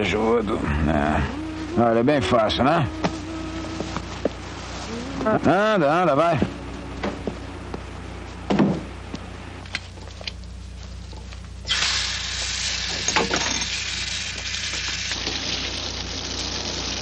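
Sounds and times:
water running into basin: 0:11.7 - 0:17.0.

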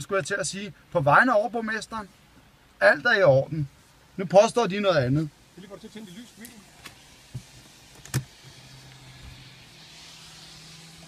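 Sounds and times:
car hum: 0:00.0 - 0:11.0
ignition click: 0:07.9 - 0:08.3.

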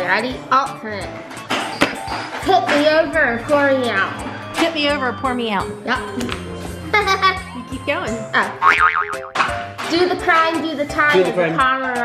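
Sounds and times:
background music: 0:00.0 - 0:12.0
cartoon boing effect: 0:08.6 - 0:09.5.

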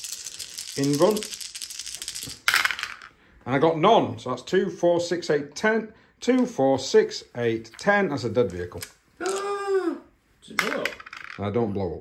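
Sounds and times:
dice clattering in wooden tray: 0:00.0 - 0:03.1, 0:10.6 - 0:11.4
plastic dice rattling in hand: 0:00.0 - 0:03.1.

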